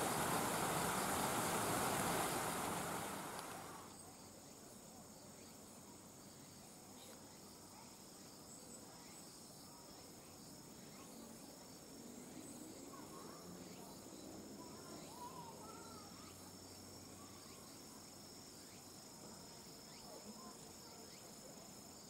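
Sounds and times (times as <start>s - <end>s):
insect chirring: 0.0s - 3.9s
loud rushing noise: 0.0s - 3.9s.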